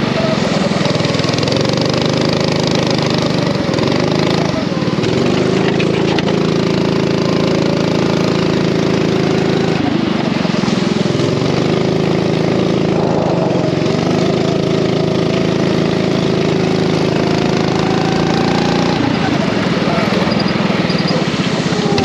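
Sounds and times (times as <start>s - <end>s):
racing kart engine running: 0.0s - 22.0s.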